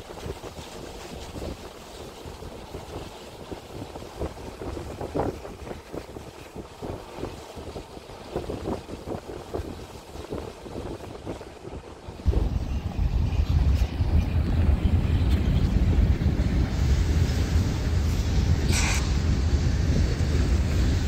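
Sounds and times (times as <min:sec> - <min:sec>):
gusty wind buffeting microphone: 0:00.0 - 0:21.0.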